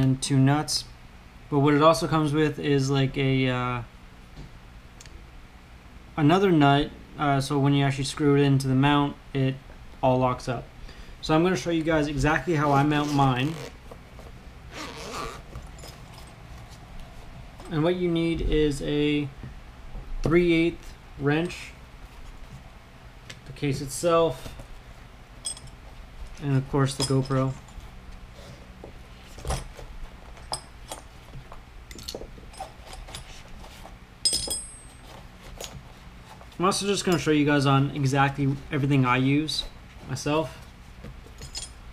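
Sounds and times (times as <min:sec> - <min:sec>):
zipper rasp: 0:13.0 - 0:13.8, 0:14.7 - 0:16.2
small mount parts clinking: 0:25.4 - 0:27.8, 0:31.9 - 0:33.4, 0:34.2 - 0:35.0, 0:41.4 - 0:41.9
ringing metallic clink: 0:34.2 - 0:34.9.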